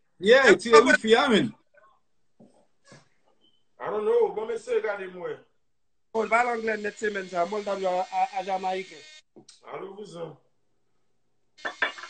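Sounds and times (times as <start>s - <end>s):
man talking: 0.2s - 1.6s, 3.8s - 5.5s, 6.2s - 9.0s.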